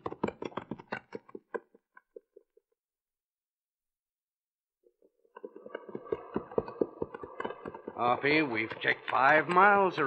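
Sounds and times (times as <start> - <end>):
horse hooves clip-clopping: 0.0 - 2.5, 5.3 - 10.0.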